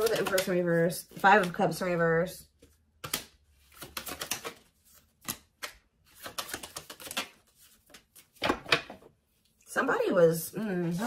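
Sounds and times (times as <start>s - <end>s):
cards clicking and rustling: 0.0s - 1.9s, 2.6s - 9.0s.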